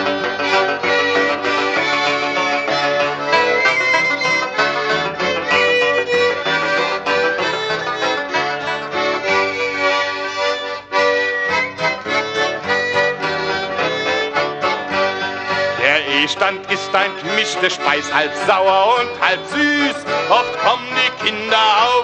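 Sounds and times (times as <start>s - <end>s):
melody in long held notes: 0.0s - 22.0s
plucked strings: 0.0s - 22.0s.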